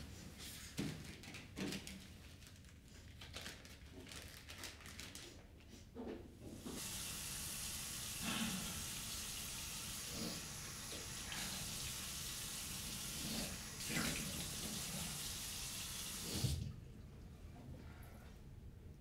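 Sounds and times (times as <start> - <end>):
tap water running into sink: 6.6 - 16.8.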